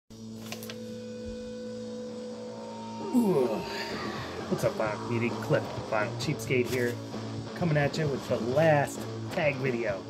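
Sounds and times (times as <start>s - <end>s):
electrical mains hum: 0.1s - 10.0s.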